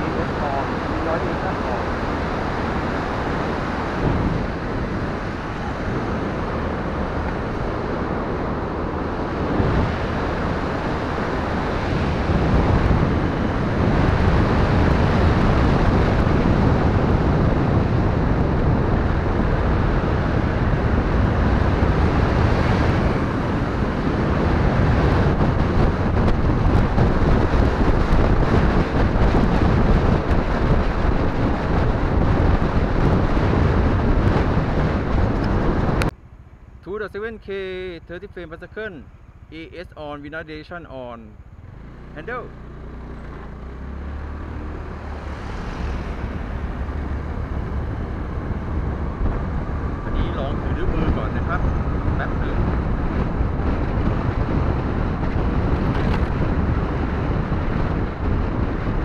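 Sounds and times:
wind buffeting microphone: 0:00.0 - 0:37.9, 0:41.0 - 0:59.0
road and vehicle noise: 0:00.0 - 0:59.0.

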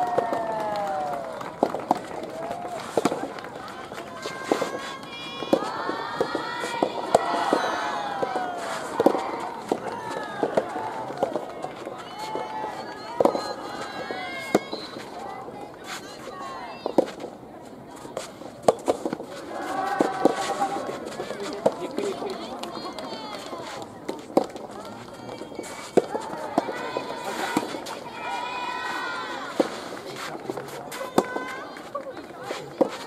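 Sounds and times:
rackets hitting ball: 0:00.0 - 0:15.2, 0:18.1 - 0:28.2, 0:29.4 - 0:33.0
people shouting and calling: 0:02.4 - 0:16.8, 0:19.3 - 0:23.8, 0:24.7 - 0:29.7.

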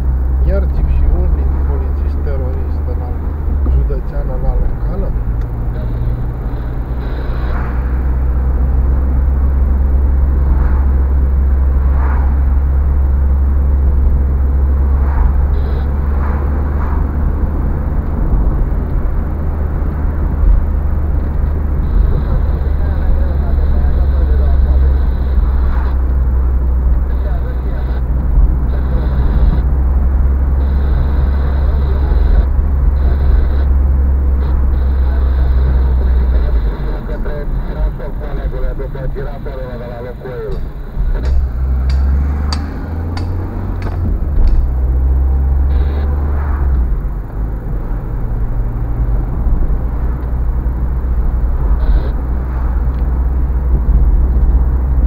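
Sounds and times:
car engine rumble: 0:00.0 - 0:55.0
tyres on asphalt: 0:00.0 - 0:55.0.

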